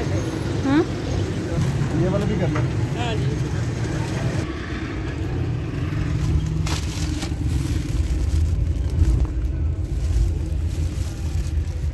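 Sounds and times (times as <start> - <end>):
vehicle rumble from inside: 0.0 - 11.9
plastic wrapping crinkling: 6.2 - 11.9.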